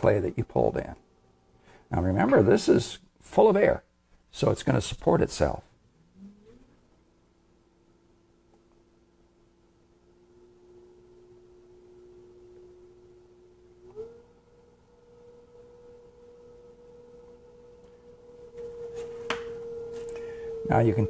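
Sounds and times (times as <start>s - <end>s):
potter's wheel motor whining: 9.9s - 21.0s.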